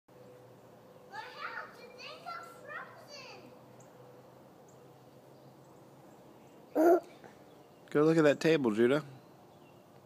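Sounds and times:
child shouting: 0:01.1 - 0:03.5.

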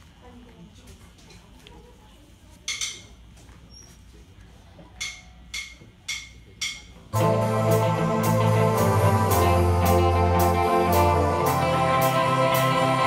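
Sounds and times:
drumstick count-in clicks: 0:05.0 - 0:07.1.

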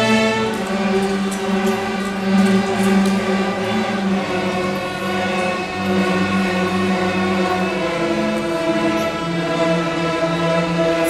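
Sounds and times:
cellos bowing: 0:00.0 - 0:11.0
string orchestra playing: 0:00.0 - 0:11.0.

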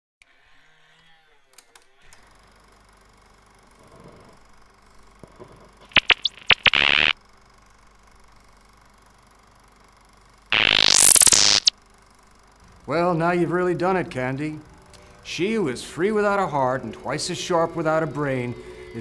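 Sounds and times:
electronic glitch bursts and sweeps: 0:05.9 - 0:07.1, 0:10.6 - 0:11.7.

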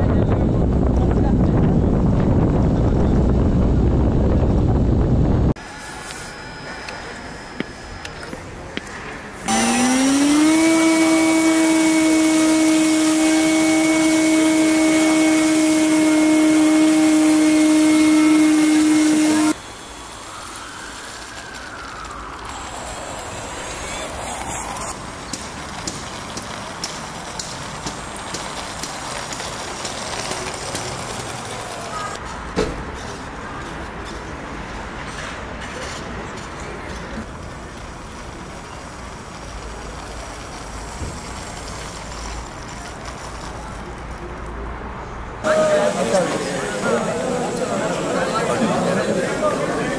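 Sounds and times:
falling and rising tone: 0:09.4 - 0:25.0
model airplane motor whining: 0:09.5 - 0:21.4.

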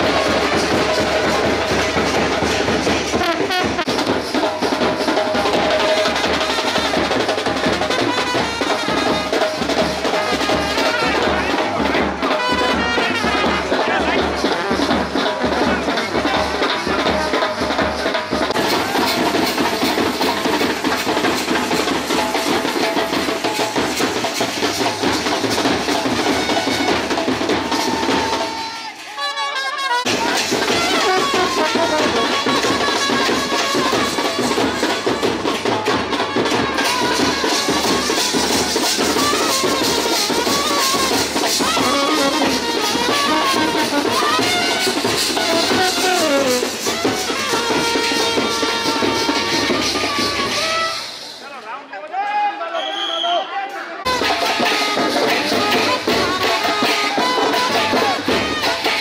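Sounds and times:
procession band music: 0:00.0 - 0:51.3, 0:54.0 - 0:59.0
loud drumming: 0:00.0 - 0:51.4, 0:54.0 - 0:59.0
crowd noise: 0:00.0 - 0:59.0.

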